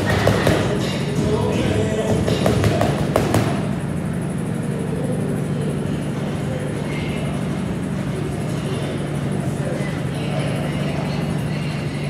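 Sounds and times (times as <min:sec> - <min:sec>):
gloves punching focus mitts: 0:00.0 - 0:00.8, 0:02.1 - 0:03.8.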